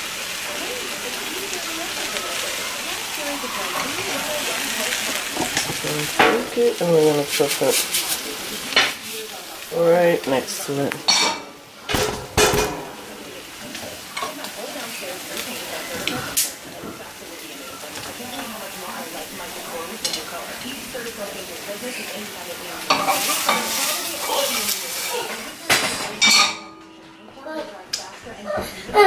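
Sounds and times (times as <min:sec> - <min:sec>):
eggs sizzling in a frying pan: 0:00.0 - 0:28.2
spatula scraping a pan: 0:03.6 - 0:09.1, 0:22.8 - 0:26.4.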